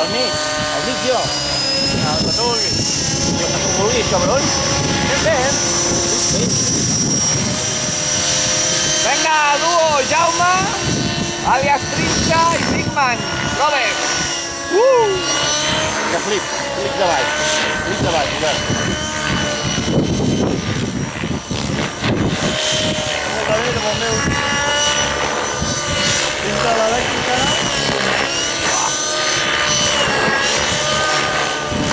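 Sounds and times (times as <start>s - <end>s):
model helicopter rotor whine: 0.0s - 31.9s.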